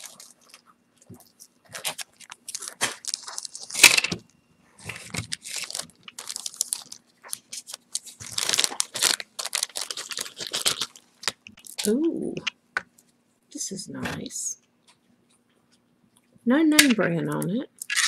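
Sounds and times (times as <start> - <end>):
plastic bag crinkling: 0.0 - 4.2, 4.8 - 12.0.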